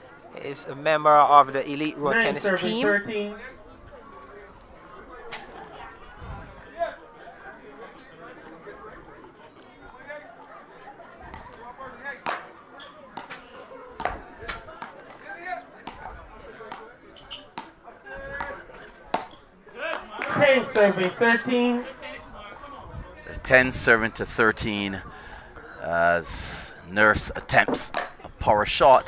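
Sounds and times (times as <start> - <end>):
crowd chatter: 0.0 - 29.0
paddles hitting tennis ball: 12.2 - 12.5, 18.4 - 21.2, 27.4 - 28.4.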